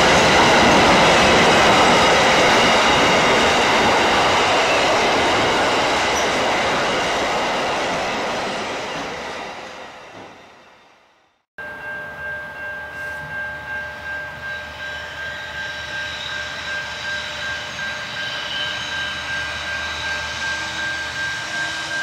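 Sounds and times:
freight train rolling on rails: 0:00.0 - 0:22.0
high whine from train wheels: 0:00.0 - 0:22.0.

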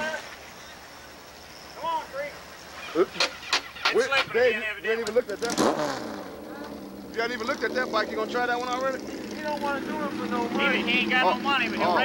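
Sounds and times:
people talking: 0:01.8 - 0:12.0.

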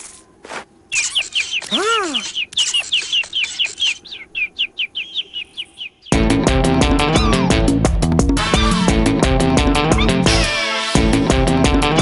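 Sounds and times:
cartoon chick chirping: 0:00.9 - 0:06.1, 0:07.1 - 0:07.5.

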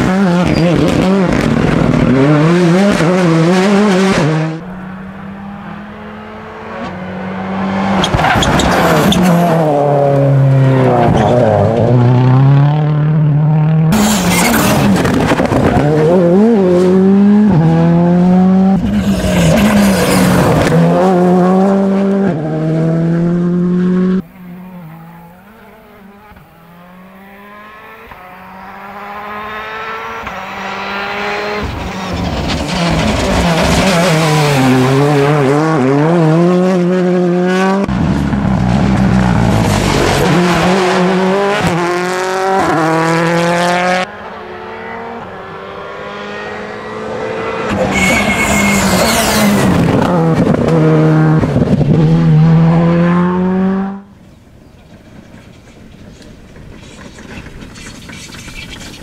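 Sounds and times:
rally cars passing at speed: 0:00.0 - 0:59.0.

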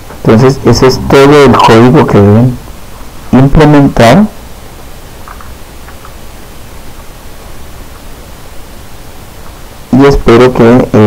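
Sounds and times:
steady hiss: 0:00.0 - 0:11.0
man's voice: 0:00.2 - 0:02.6, 0:03.3 - 0:04.4, 0:09.9 - 0:11.0.

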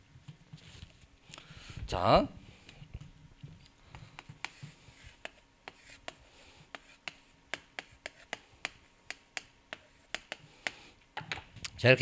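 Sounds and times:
chalk tapping on chalkboard: 0:03.9 - 0:10.8.

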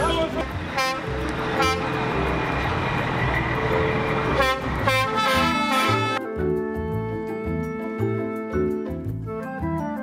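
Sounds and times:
truck horns honking: 0:00.0 - 0:02.5, 0:03.8 - 0:06.2
truck engines rumbling: 0:00.0 - 0:06.2.

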